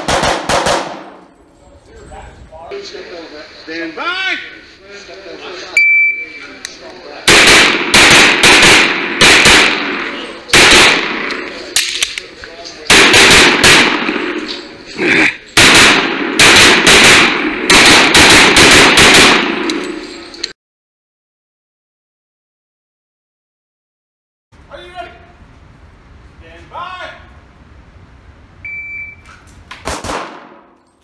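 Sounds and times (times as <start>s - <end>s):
pistol shots echoing indoors: 0.0s - 1.2s, 7.3s - 12.1s, 12.9s - 14.6s, 15.6s - 20.0s, 29.8s - 30.8s
shot timer beep: 5.8s - 6.4s, 28.6s - 29.3s.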